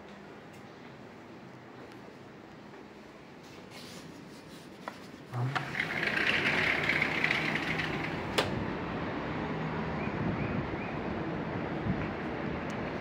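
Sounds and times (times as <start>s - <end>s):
city traffic noise: 0.0s - 13.0s.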